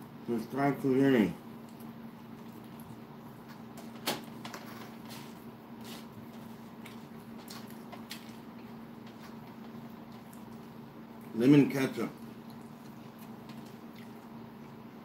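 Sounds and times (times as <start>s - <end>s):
man chewing food: 1.5s - 11.4s, 12.2s - 15.0s.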